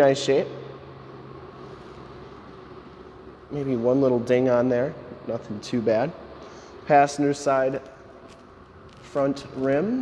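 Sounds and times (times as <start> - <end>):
room tone hum and hiss: 0.0 - 10.0.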